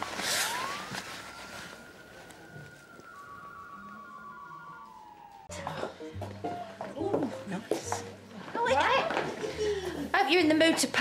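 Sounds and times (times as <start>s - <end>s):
held high tones: 0.4s - 6.2s
faint low notes: 1.6s - 10.1s.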